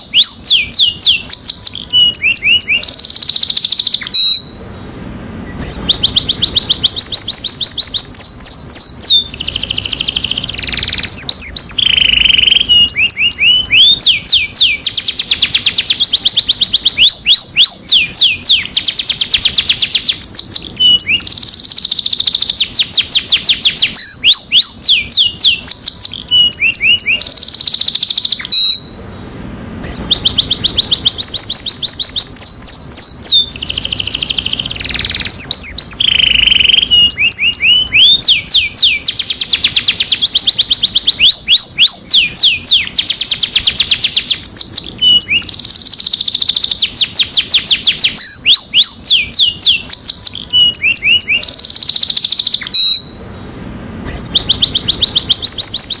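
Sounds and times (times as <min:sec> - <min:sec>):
canary singing trills: 0:00.0 - 0:56.0.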